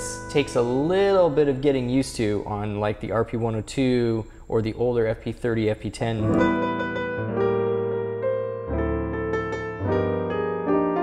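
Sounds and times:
piano chords over bass notes: 0.0 - 2.8, 6.2 - 11.0.

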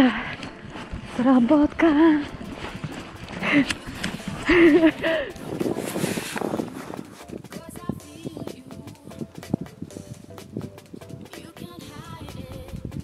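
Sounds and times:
footsteps crunching through snow: 0.3 - 7.4.

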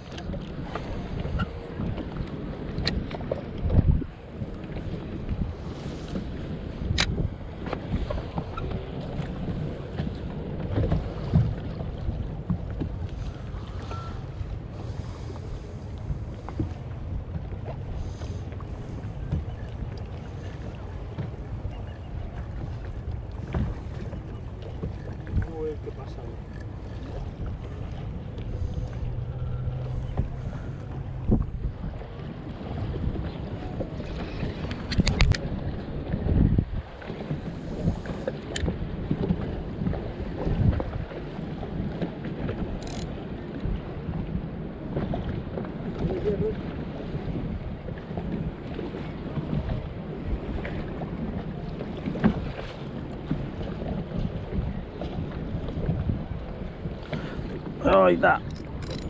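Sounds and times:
water slapping boat hull: 0.0 - 59.0
wind rumbling on microphone: 0.0 - 59.0.

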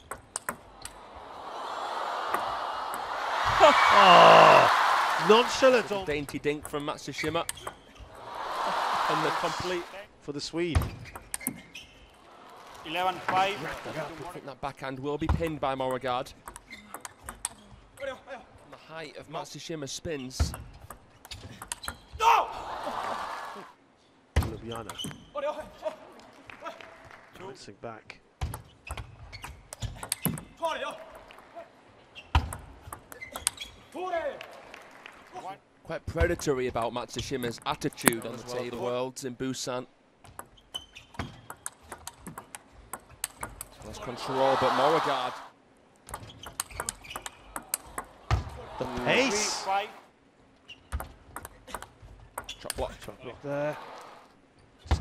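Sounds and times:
crowd noise: 0.7 - 6.1, 8.0 - 10.0, 12.2 - 14.4, 22.4 - 23.8, 43.9 - 45.5, 47.5 - 50.1
loud shout: 1.1 - 5.9, 8.2 - 10.0, 22.2 - 23.7, 44.0 - 45.5, 48.5 - 50.0
table tennis ball clicking: 41.2 - 43.8, 46.0 - 48.2, 50.9 - 52.9
voices: 48.5 - 50.0.

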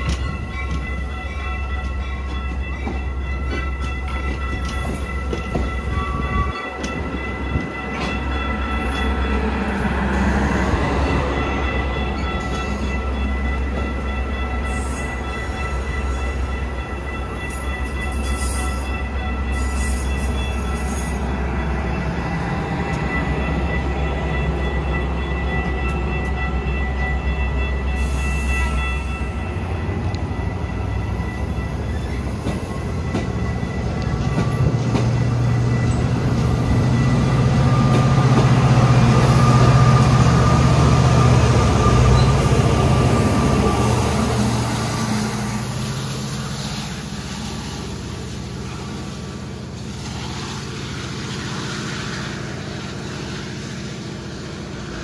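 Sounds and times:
train low hum: 0.0 - 55.0.

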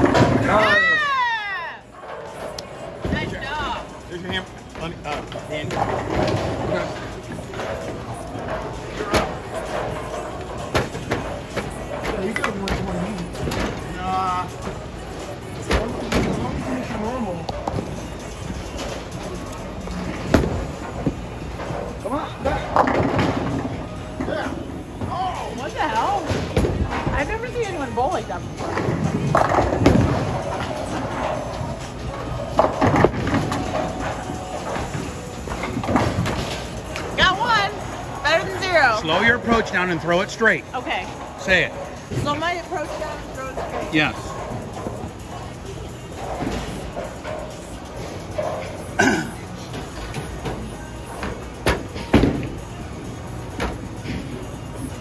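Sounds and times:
bowling balls rolling: 0.0 - 39.7
background music: 0.0 - 55.0.

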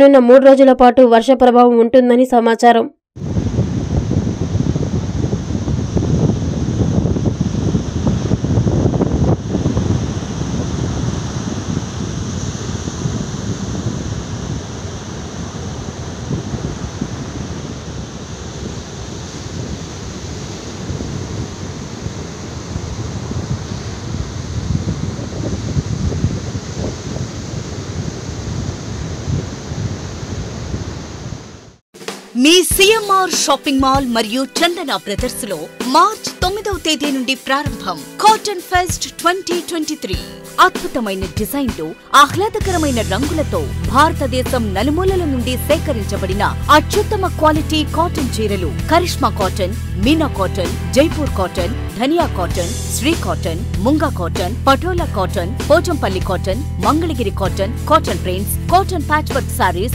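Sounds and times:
surf breaking on beach: 3.2 - 31.8
wind buffeting microphone: 3.2 - 31.8.

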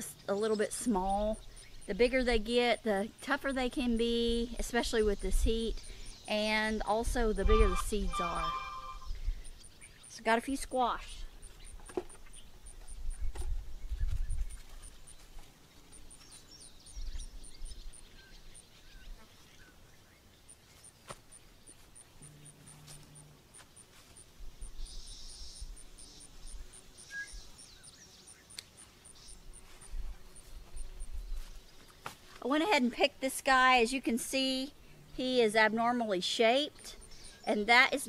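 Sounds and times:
short high chirp: 7.5 - 9.2.

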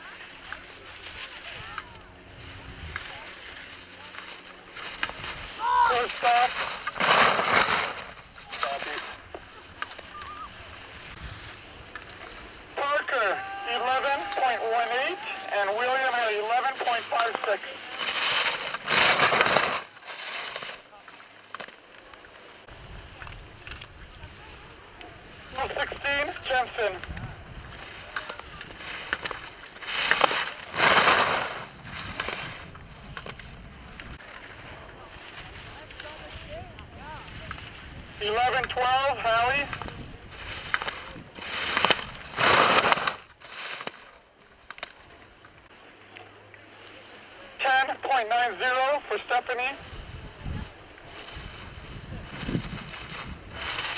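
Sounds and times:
skis swishing on snow: 0.0 - 33.4, 34.0 - 45.4, 47.4 - 53.9.

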